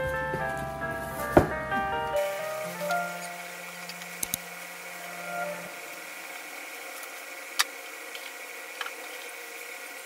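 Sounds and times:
low steady tone: 2.2s - 6.9s.

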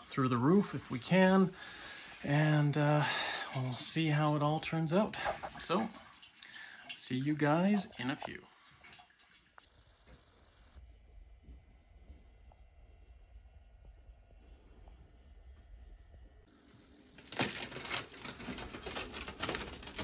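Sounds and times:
faint low rumble: 9.7s - 16.9s
rusted metal pipe crackling: 16.0s - 20.0s.

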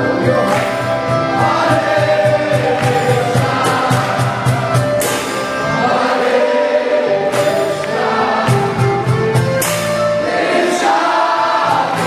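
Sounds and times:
percussion steady quick beat: 0.0s - 6.1s, 7.2s - 10.2s
group of voices chanting: 10.2s - 12.0s.

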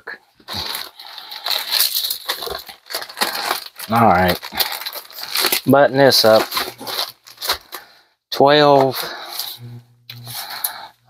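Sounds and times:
plastic bag crinkling: 0.4s - 8.0s.

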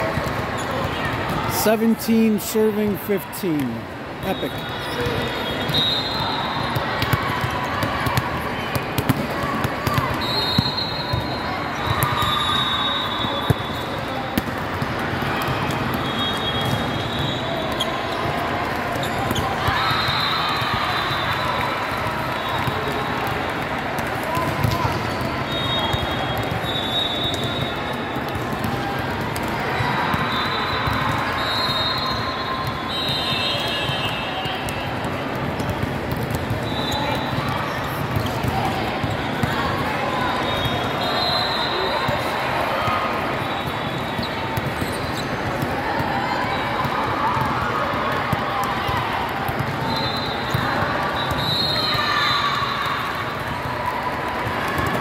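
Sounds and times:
crowd chatter: 0.0s - 55.0s
referee whistles: 4.2s - 6.8s, 10.1s - 14.0s, 15.9s - 17.9s, 25.4s - 27.9s, 30.2s - 34.6s, 36.6s - 37.4s, 40.3s - 42.1s, 43.4s - 45.3s, 49.8s - 52.9s
volleyballs struck and bouncing: 4.9s - 12.4s, 22.0s - 40.0s, 44.0s - 52.0s.

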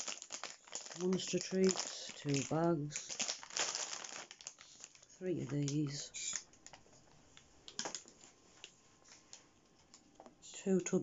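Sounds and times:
plastic packets crinkling: 0.0s - 8.7s.

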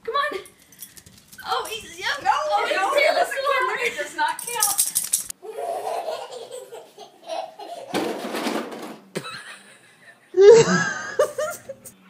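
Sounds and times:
person laughing: 9.2s - 12.0s.

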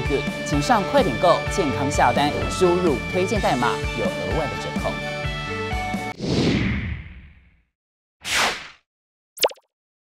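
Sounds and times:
pop dropping in pitch: 9.4s - 9.7s.

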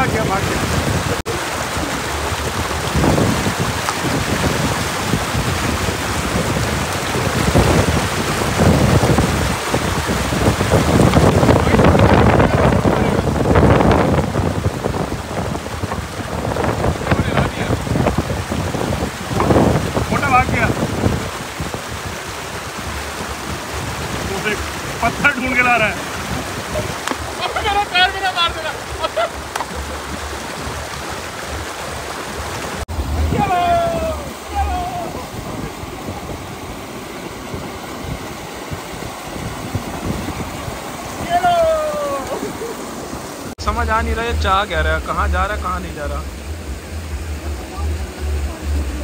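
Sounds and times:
stream rushing over rocks: 0.0s - 49.0s
man calling out: 27.3s - 29.1s, 33.0s - 35.5s, 41.2s - 42.5s.

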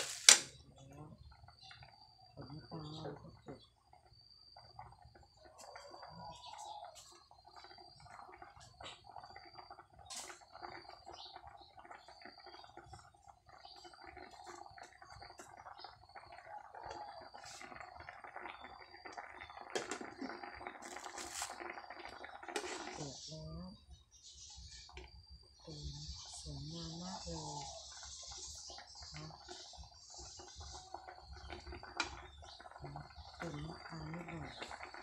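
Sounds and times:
curry bubbling in pot: 0.0s - 35.0s.

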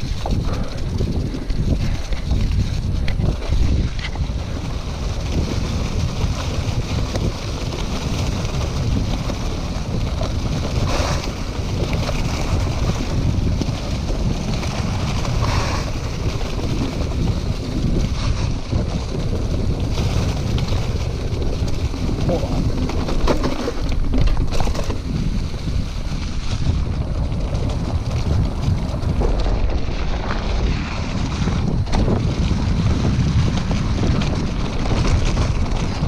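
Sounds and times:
bike rumbling over ground: 0.0s - 36.0s
wind buffeting microphone: 0.0s - 36.0s.

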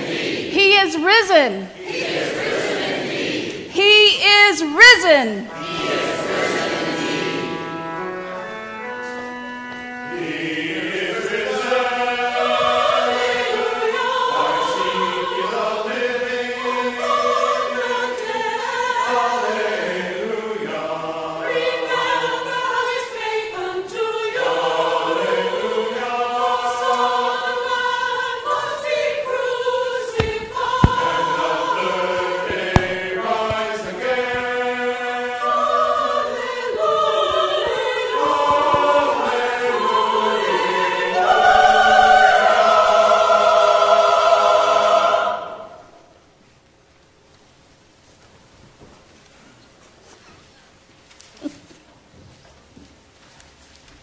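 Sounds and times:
church choir singing: 0.0s - 46.4s.

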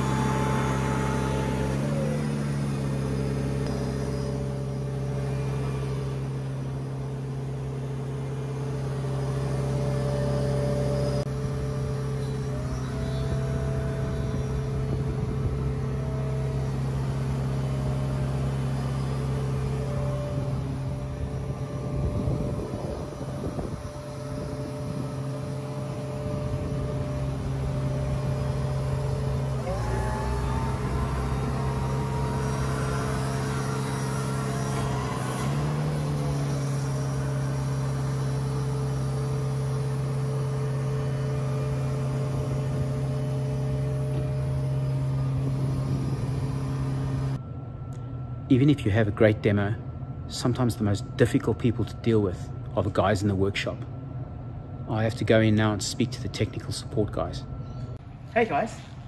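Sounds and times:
sweeper engine running: 0.0s - 53.0s
hydraulic whine: 0.0s - 59.0s.

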